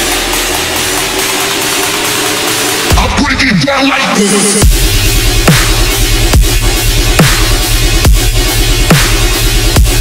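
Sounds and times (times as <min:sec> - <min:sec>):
deep bass: 0:00.0 - 0:10.0
dubstep build-up: 0:00.0 - 0:10.0.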